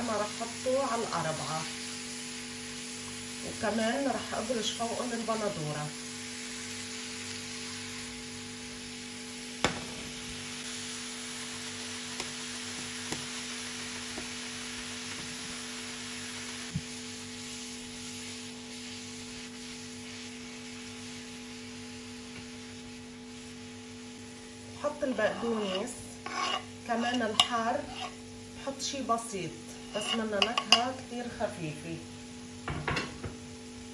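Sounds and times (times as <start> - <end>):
vegetables sizzling in a pan: 0.0 - 33.9.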